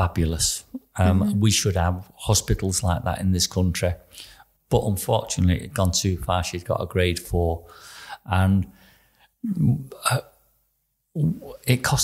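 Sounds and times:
man saying uh: 0.0s - 4.0s, 9.4s - 10.2s, 11.2s - 12.0s
sharp catch of breath: 7.7s - 8.2s.

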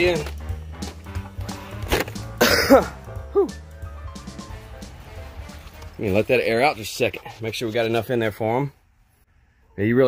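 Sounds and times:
background music with held tones: 0.0s - 6.2s
man coughing: 2.4s - 3.0s.

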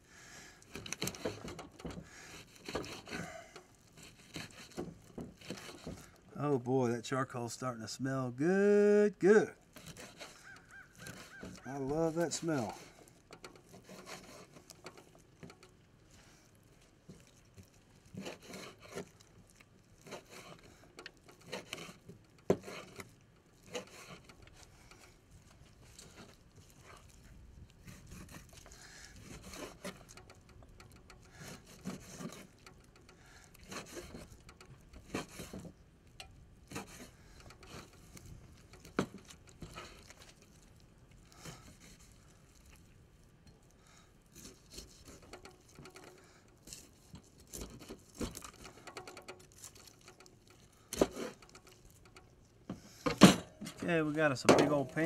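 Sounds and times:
knife cutting on wooden board: 4.1s - 6.0s.

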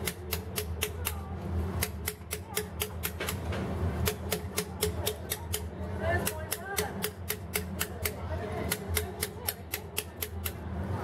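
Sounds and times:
hammer striking chisel on stone: 0.0s - 1.2s, 1.8s - 10.6s.

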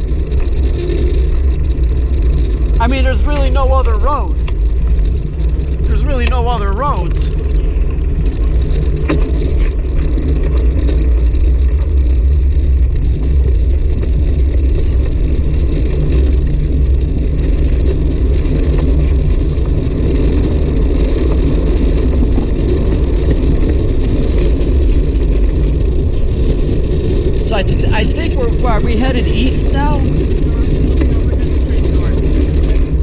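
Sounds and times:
bicycle tyre road noise: 0.0s - 33.0s
wind rush on microphone: 0.0s - 33.0s.

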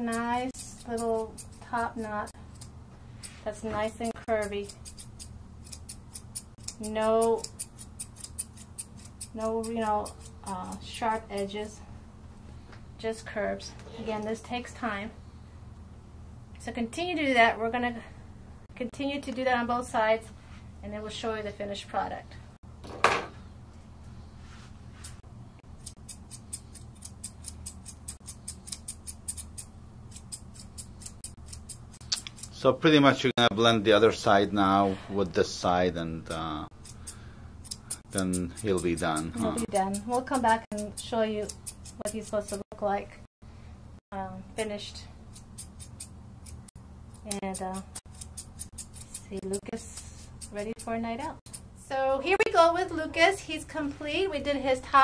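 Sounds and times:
grooming shears snipping hair: 0.0s - 11.5s, 24.9s - 32.6s, 36.7s - 42.7s, 45.3s - 51.6s
low steady hum: 0.0s - 55.0s.

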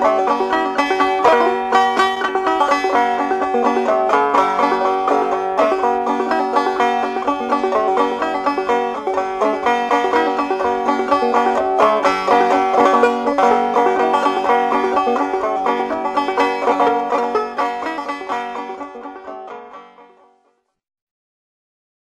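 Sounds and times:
banjo tune: 0.0s - 20.7s.

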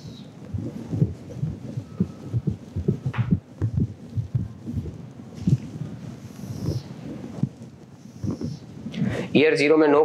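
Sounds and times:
marker knocking on whiteboard: 3.0s - 3.8s.

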